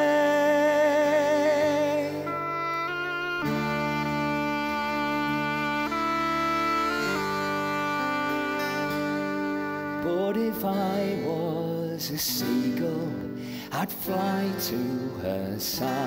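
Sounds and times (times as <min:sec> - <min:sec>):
held instrumental chords: 0:00.0 - 0:11.9.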